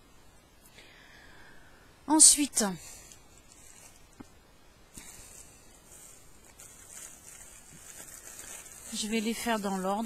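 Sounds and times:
soft steady high hiss: 0.0s - 10.0s.

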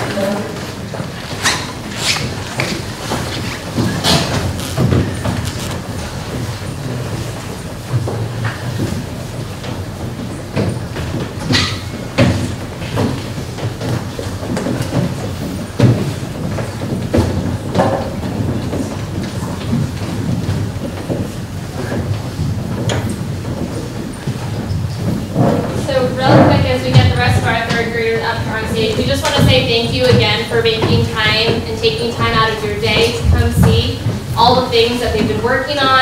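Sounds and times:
audience murmur and shuffling: 0.0s - 36.0s
footsteps on wooden stage: 0.0s - 36.0s.

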